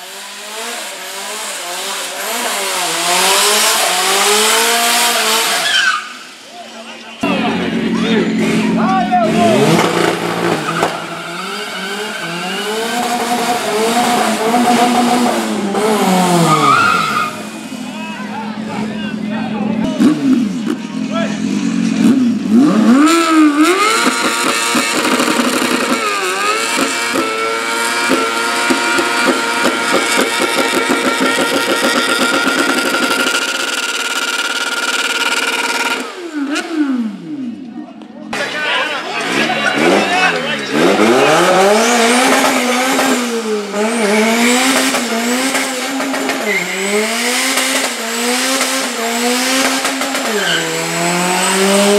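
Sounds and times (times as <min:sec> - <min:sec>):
car engine revving: 0:00.0 - 0:37.7, 0:38.4 - 0:51.9.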